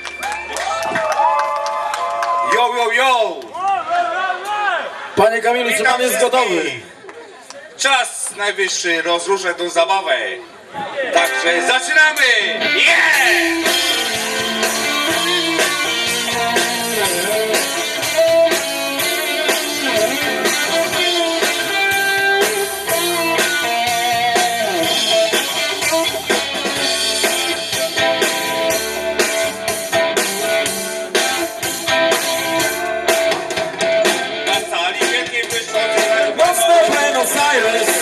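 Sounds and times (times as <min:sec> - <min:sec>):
electric guitars: 0:11.2 - 0:38.0
drum kit beat: 0:12.2 - 0:38.0.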